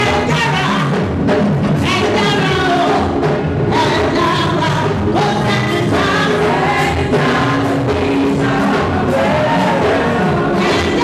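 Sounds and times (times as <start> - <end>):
gospel choir with band: 0.0 - 11.0.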